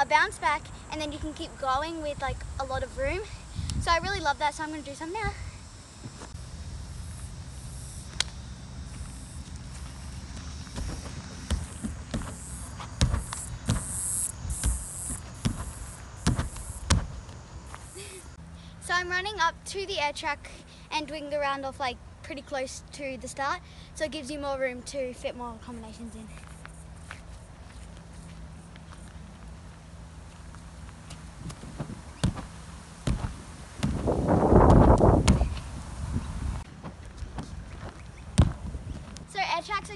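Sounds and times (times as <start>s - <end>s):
steady low rumble: 0.0s - 20.4s
bare feet running on grass: 8.9s - 18.0s, 30.5s - 35.7s
thumps on an air track: 10.8s - 12.4s, 13.0s - 17.2s, 31.5s - 32.5s, 33.1s - 35.6s, 38.4s - 38.7s.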